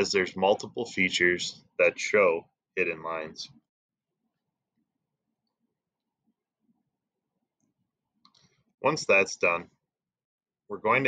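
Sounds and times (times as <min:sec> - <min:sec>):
man speaking: 0:00.0 - 0:03.5, 0:08.8 - 0:09.6, 0:10.7 - 0:11.0.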